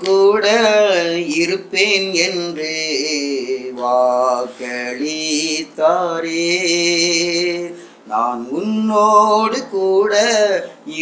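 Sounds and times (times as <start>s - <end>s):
man singing a worship song: 0.0s - 11.0s.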